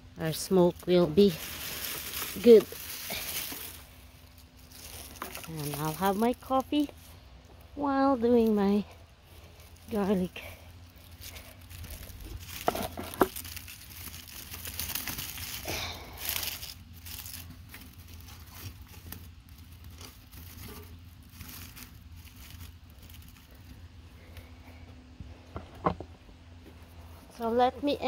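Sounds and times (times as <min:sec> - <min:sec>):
dry sticks rustling and crinkling: 0:00.1 - 0:28.0.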